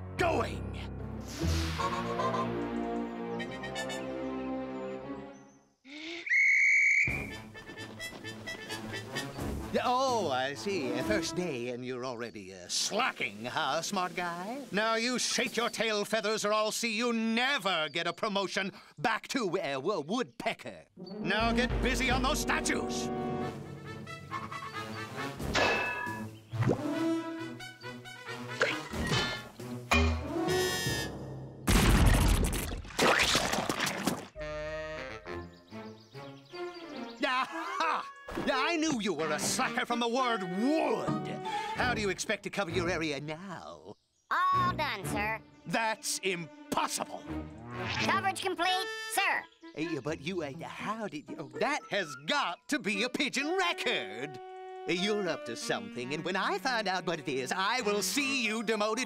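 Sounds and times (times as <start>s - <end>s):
music: 0.0s - 5.8s, 7.1s - 11.9s, 21.0s - 31.7s, 34.4s - 37.8s, 38.5s - 43.2s, 44.3s - 59.0s
loud high whistle: 6.3s - 7.3s.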